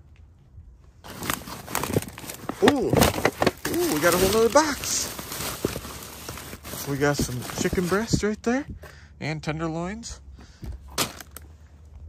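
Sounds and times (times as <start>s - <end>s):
plastic wrap rustling: 1.0s - 8.4s.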